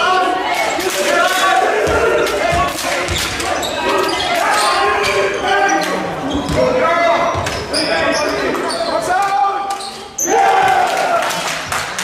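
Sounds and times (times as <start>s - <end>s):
people shouting: 0.0s - 6.1s, 10.2s - 11.4s
basketball bouncing on hall floor: 1.7s - 8.7s.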